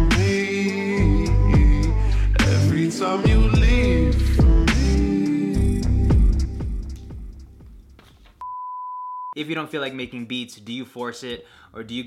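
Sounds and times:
music: 0:00.0 - 0:08.0.

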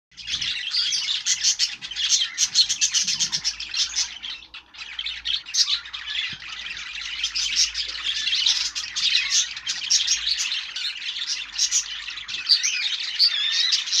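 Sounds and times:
budgerigar chattering and warbling: 0:00.2 - 0:14.0.

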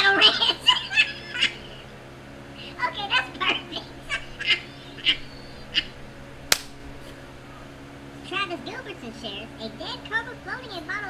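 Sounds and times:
man laughing wheezily: 0:04.0 - 0:05.9
sharp click: 0:06.5 - 0:06.8.

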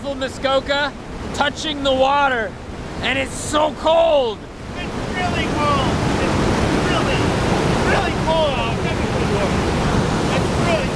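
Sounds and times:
whitewater rushing over rocks: 0:00.0 - 0:10.9.

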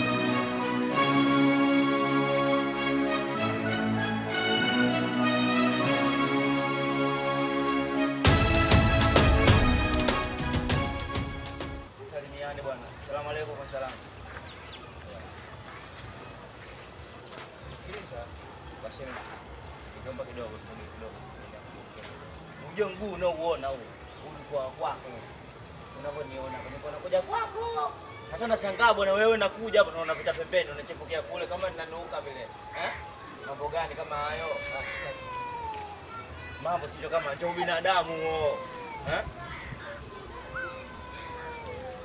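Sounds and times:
crickets chirping: 0:10.5 - 0:42.0
faint voices: 0:11.9 - 0:42.0.

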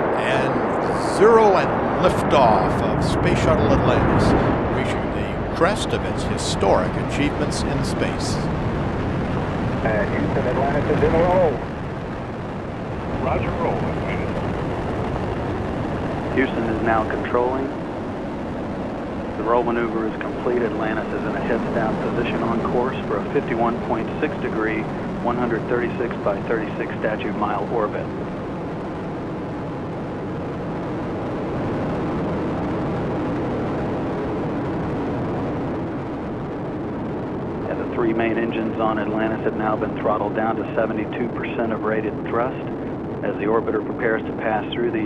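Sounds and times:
rocket engines crackling rumble: 0:00.0 - 0:45.0.

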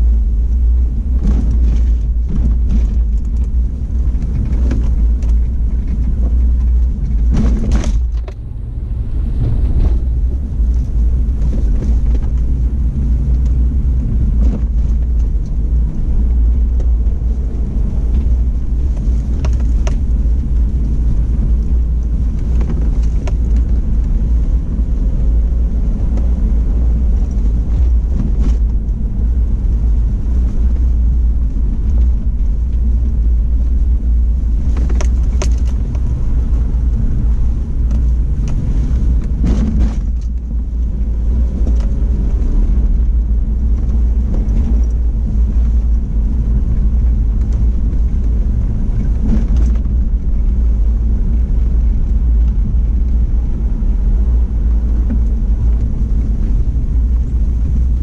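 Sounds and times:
vehicle engine and tyres rumbling: 0:00.0 - 0:58.0.

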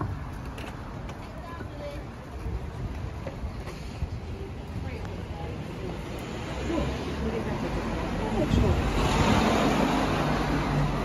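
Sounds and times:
car passing close by: 0:06.2 - 0:11.0.

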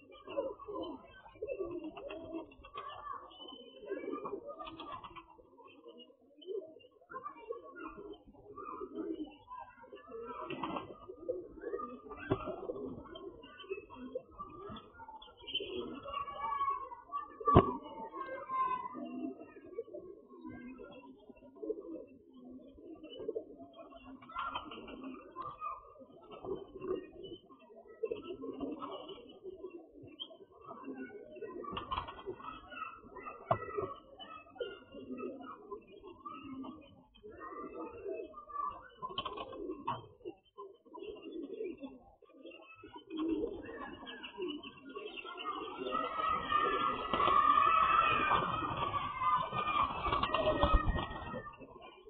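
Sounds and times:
pigeons cooing: 0:00.0 - 0:52.0
chicks cheeping: 0:42.6 - 0:52.0.

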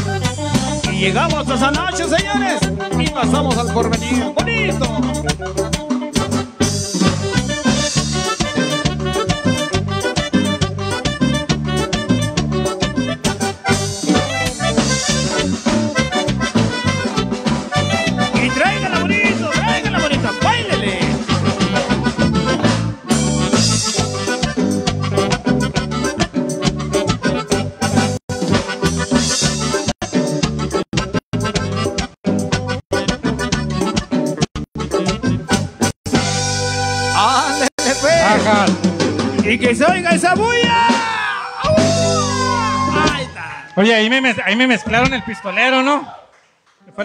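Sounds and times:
live band playing latin dance tune: 0:00.0 - 0:45.4.

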